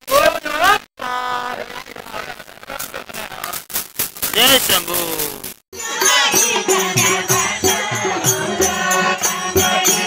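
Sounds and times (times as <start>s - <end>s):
steady percussion beat: 3.7s - 10.0s
group chanting: 5.8s - 10.0s.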